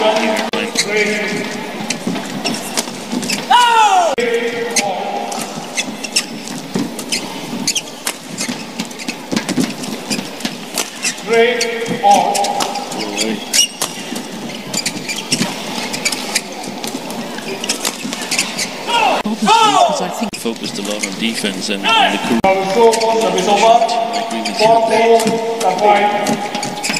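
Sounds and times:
shoes squeaking on court: 0.0 - 26.9.

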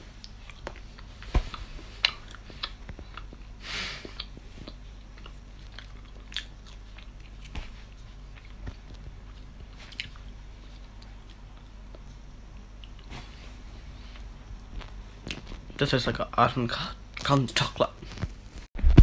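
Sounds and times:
faint low hum: 0.0 - 19.0
person chewing: 0.2 - 13.1.

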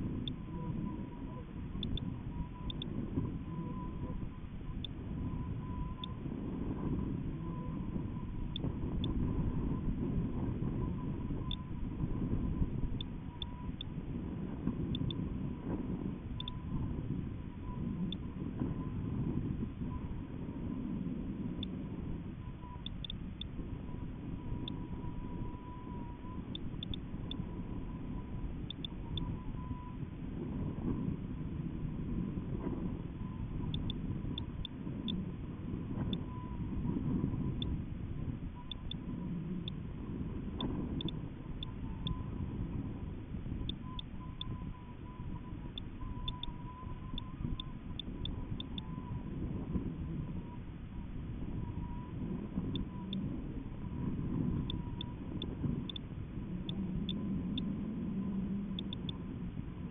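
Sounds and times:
wind buffeting microphone: 0.0 - 59.9
faint ticks: 0.2 - 3.9, 8.5 - 9.3, 12.5 - 14.0, 14.6 - 16.8, 17.6 - 18.9, 22.4 - 23.6, 24.4 - 28.0, 28.6 - 29.9, 33.6 - 35.3, 35.9 - 37.8, 38.6 - 39.8, 40.5 - 42.4, 43.6 - 49.1, 51.6 - 53.4, 54.4 - 59.3.

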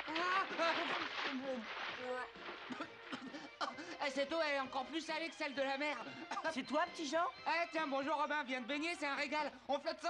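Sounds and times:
water splash: 0.0 - 3.2.

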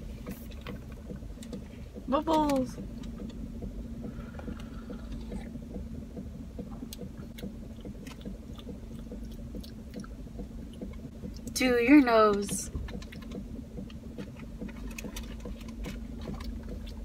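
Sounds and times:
car cabin hum and rumble: 0.0 - 17.0
person drinking from bottle: 4.2 - 5.5.

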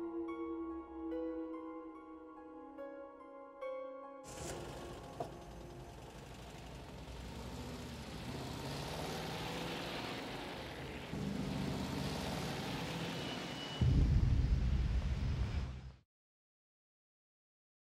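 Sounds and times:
deep rumble: 13.8 - 16.0.

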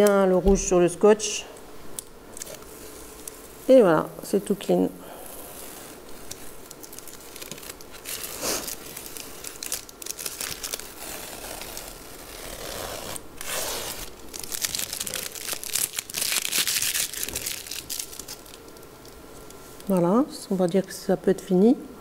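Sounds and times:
masking tape crinkling and tearing: 2.3 - 3.5, 5.4 - 21.0.

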